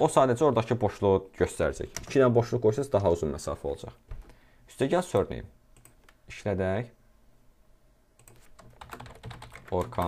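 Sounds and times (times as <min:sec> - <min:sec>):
computer keyboard typing: 0:01.9 - 0:02.2, 0:05.2 - 0:06.2, 0:08.2 - 0:10.0.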